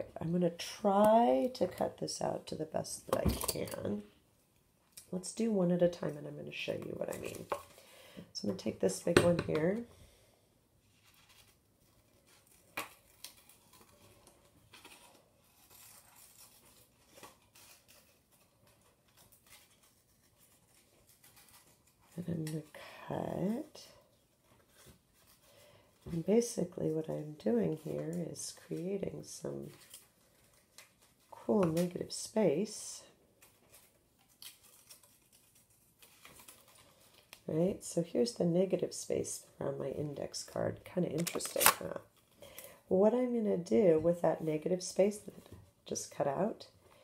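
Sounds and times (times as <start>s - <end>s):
paper rustling: 10.8s - 22.7s, 24.1s - 32.6s, 33.4s - 37.5s.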